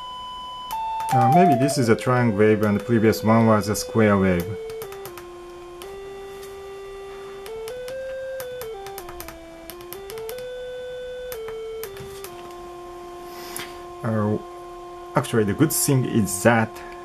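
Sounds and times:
electronic tone stepping through notes: 0.8 - 17.0
small clicks: 4.4 - 5.9, 7.4 - 10.5.

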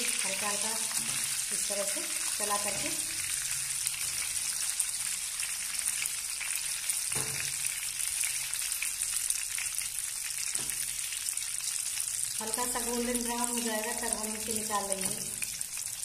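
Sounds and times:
slices sizzling in hot oil: 0.0 - 16.0.

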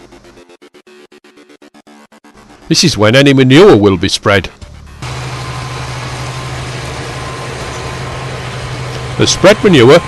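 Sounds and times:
tractor diesel engine under load: 5.0 - 10.0.

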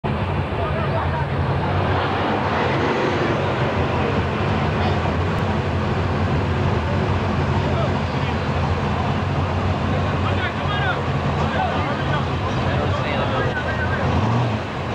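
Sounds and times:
car engines idling: 0.0 - 14.9
crowd voices: 0.0 - 14.9.

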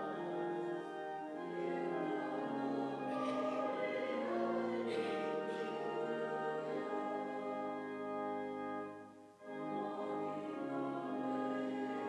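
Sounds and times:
congregation singing a hymn: 0.0 - 12.0
keyboard accompaniment: 0.0 - 12.0.

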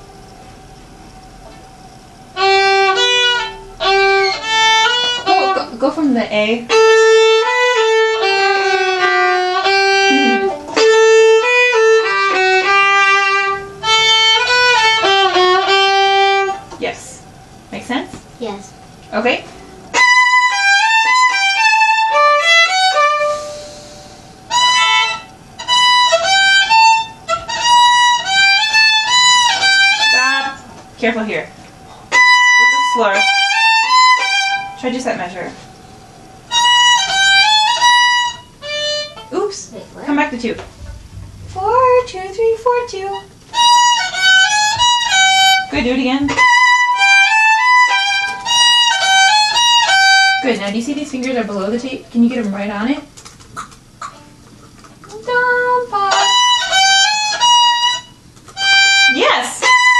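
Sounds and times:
two violins playing melody: 2.4 - 5.7, 6.7 - 16.7, 20.0 - 30.6, 32.1 - 34.8, 36.5 - 39.3, 43.5 - 45.7, 46.3 - 50.4, 56.1 - 59.9
person talking: 39.4 - 43.2.

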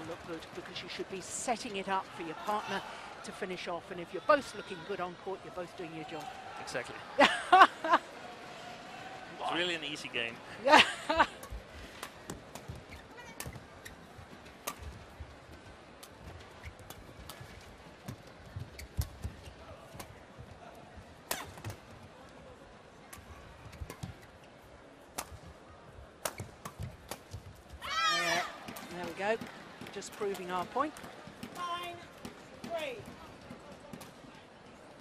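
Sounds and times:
arena background noise: 0.0 - 35.0.

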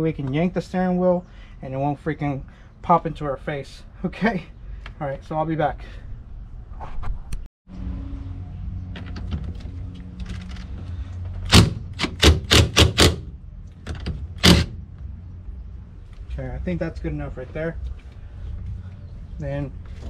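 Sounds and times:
impact wrench hammering: 11.4 - 13.3, 14.4 - 14.8.

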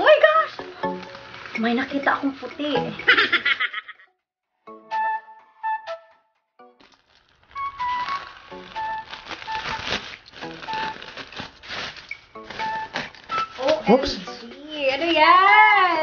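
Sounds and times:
plastic wrapping crinkling and tearing: 0.2 - 2.8, 6.8 - 16.0
flute-like background music: 4.7 - 6.5, 7.4 - 16.0.

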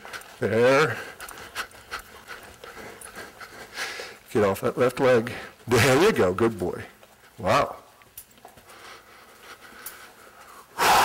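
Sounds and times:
heavy breathing: 0.0 - 4.4, 8.5 - 11.0.

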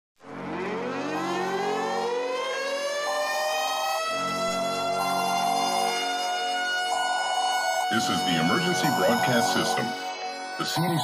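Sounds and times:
air-raid siren winding up: 0.8 - 11.0.

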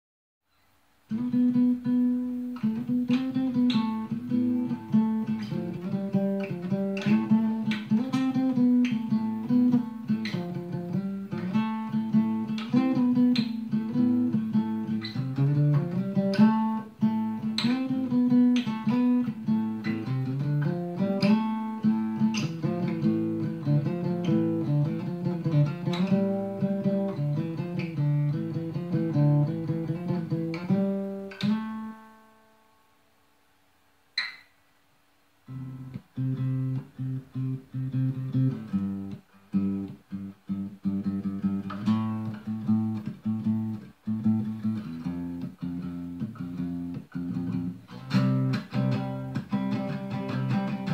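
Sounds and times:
acoustic guitar playing: 1.1 - 33.0, 34.2 - 34.6, 35.4 - 50.9.

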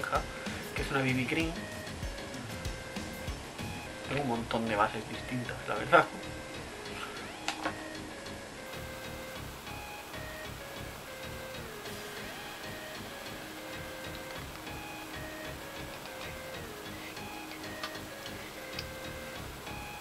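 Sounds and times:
soft melody with ticking beat: 0.0 - 20.0.

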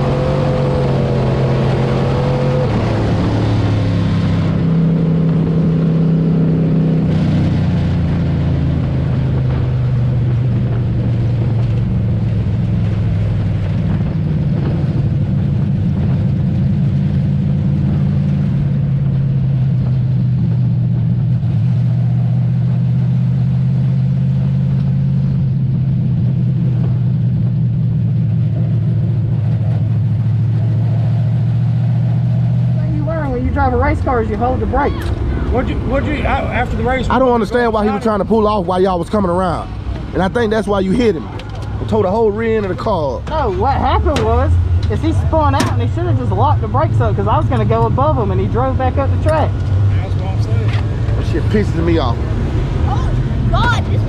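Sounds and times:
race car engine running: 0.0 - 54.0.

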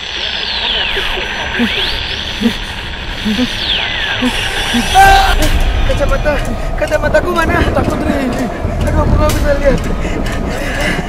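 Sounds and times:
radio static hiss: 0.0 - 5.4
radio signal with steady tones: 0.0 - 6.4.

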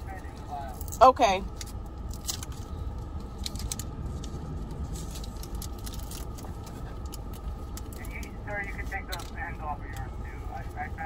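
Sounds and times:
car idling hum: 0.0 - 11.0
packaging clicks and crinkles: 0.7 - 10.1.

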